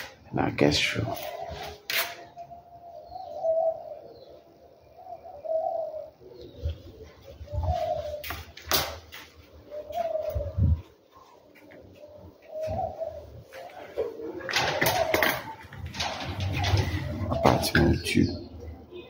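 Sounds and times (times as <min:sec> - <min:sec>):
dove cooing: 0:00.0 - 0:19.0.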